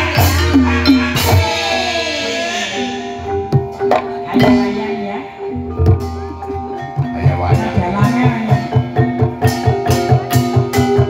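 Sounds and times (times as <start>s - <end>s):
gamelan music: 0.0s - 11.0s
sharp percussive strikes: 0.0s - 11.0s.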